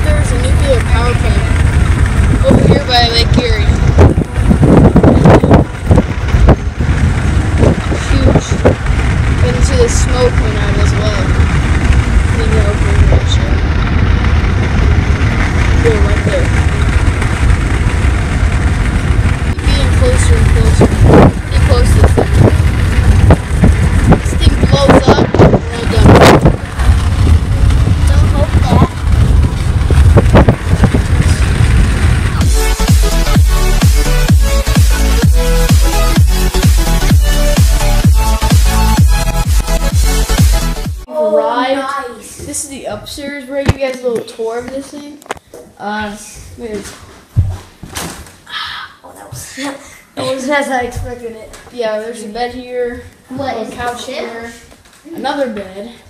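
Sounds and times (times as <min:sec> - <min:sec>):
road and engine rumble in car: 0:00.0 - 0:41.1
indistinct voices: 0:07.6 - 0:14.2, 0:15.3 - 0:17.3, 0:19.5 - 0:45.2.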